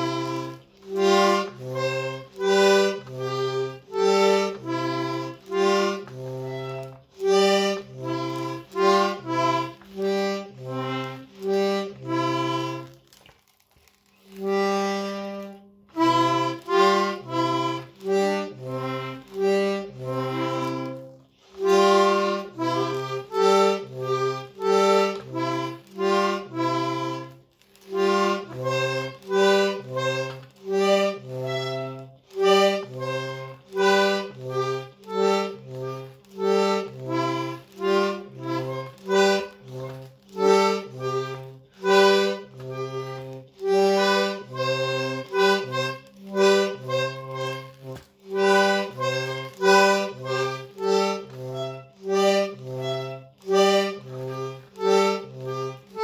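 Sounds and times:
button accordion chords: 0.0 - 13.0, 14.2 - 56.0.

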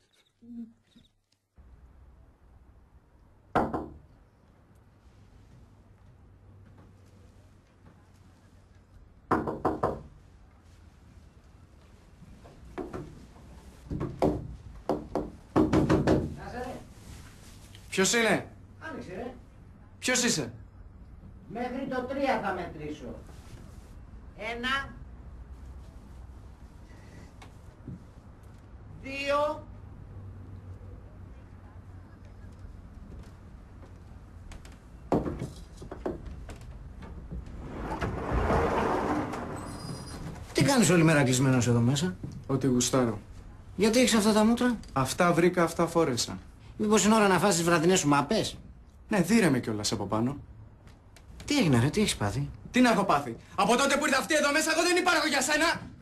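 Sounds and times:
knocks on a wooden door: 3.5 - 4.0, 9.3 - 10.1, 13.9 - 16.4.

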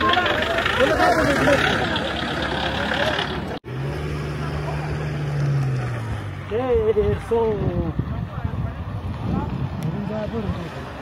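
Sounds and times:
motor vehicle engine hum: 0.0 - 11.0
noisy bustle: 0.0 - 11.0
voices: 0.0 - 11.0.

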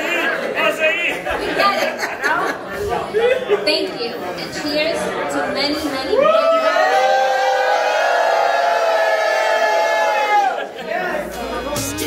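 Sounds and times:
group shouting a toast cheer: 6.2 - 11.3.

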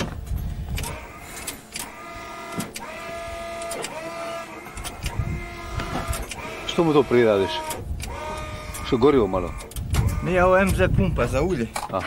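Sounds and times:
electric oil pump whining: 0.0 - 12.0.

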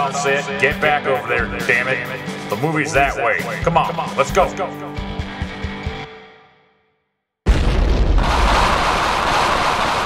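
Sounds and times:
deep explosion rumble: 7.5 - 10.0.

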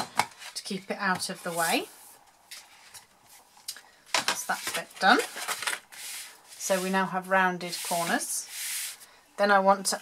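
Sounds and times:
card rustling: 4.5 - 6.3.

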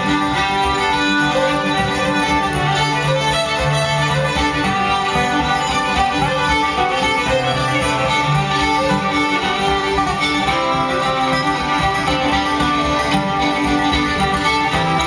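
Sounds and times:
fiddles playing melody: 0.0 - 15.0
strummed acoustic guitar: 0.0 - 15.0.

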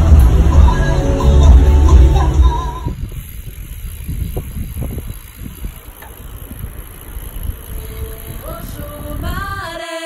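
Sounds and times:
bicycle road noise: 0.0 - 10.0
wind buffeting microphone: 2.4 - 9.8.

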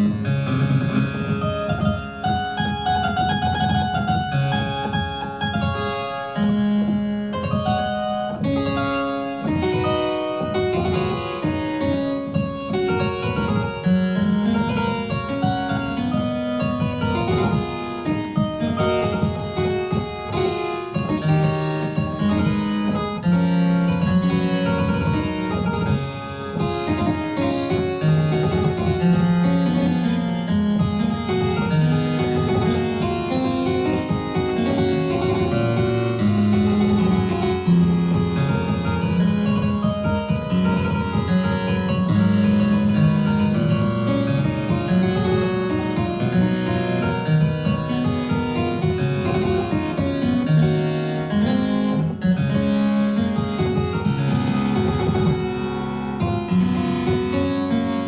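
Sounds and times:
harpsichord playing: 0.0 - 58.0.

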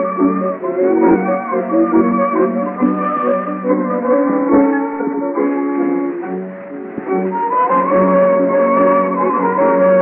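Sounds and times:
instrumental tango orchestra: 0.0 - 10.0.

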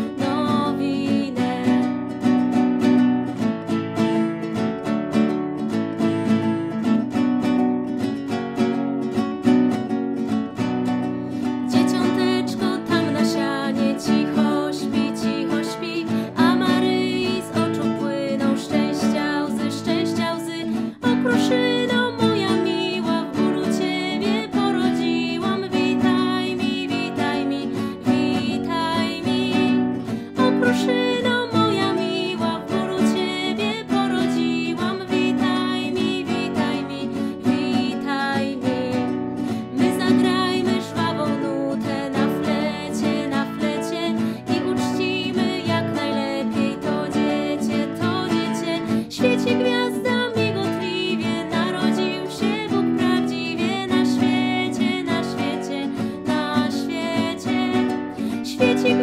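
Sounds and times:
woman singing a carol: 0.0 - 2.4, 11.4 - 59.0
strummed nylon-string guitar: 0.0 - 59.0.

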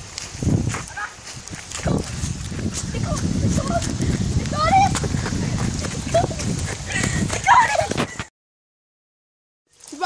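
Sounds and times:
hurried footsteps on leaves: 0.0 - 8.3
rumbling microphone noise: 0.0 - 8.3.

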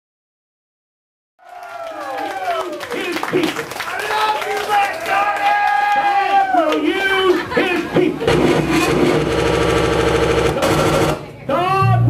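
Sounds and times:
stuttering buzzing electronic drone: 8.2 - 11.3.

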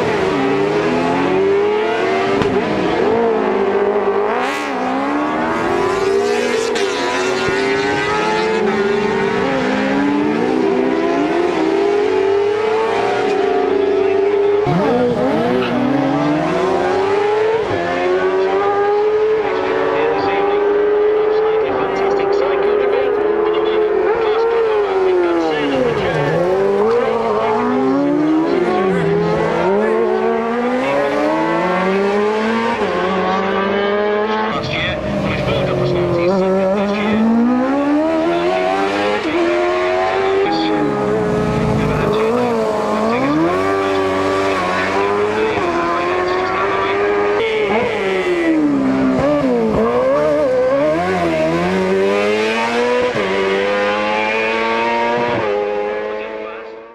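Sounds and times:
racing engines revving hard: 0.0 - 56.9.

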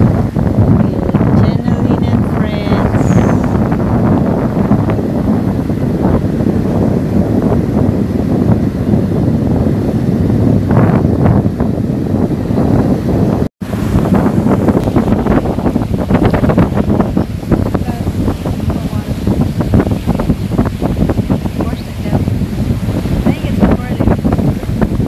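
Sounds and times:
surf washing onto beach: 0.0 - 25.0
wind buffeting microphone: 0.0 - 25.0.

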